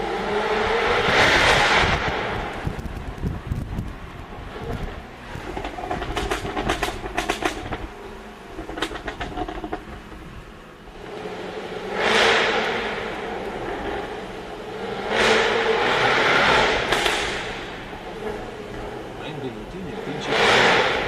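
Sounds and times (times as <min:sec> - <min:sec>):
sports car engine accelerating: 0:00.0 - 0:21.0
exhaust pops: 0:01.0 - 0:11.2, 0:15.1 - 0:21.0.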